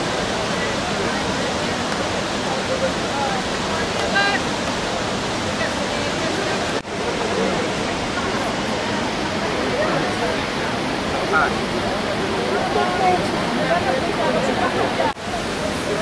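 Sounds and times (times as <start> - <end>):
faint voices: 0.0 - 16.0
waterfall rushing: 0.0 - 16.0.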